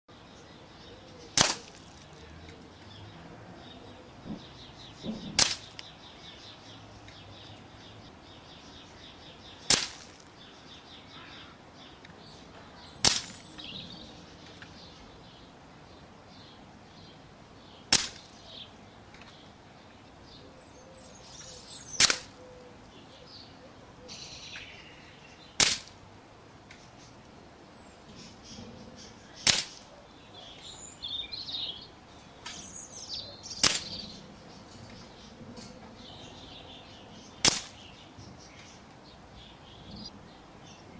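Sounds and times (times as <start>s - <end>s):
air rifle cracks: 1.4s - 2.0s, 5.4s - 5.9s, 9.7s - 10.3s, 13.0s - 13.4s, 17.9s - 18.4s, 22.0s - 22.4s, 25.6s - 26.0s, 29.4s - 29.9s, 33.6s - 34.0s, 37.4s - 37.8s.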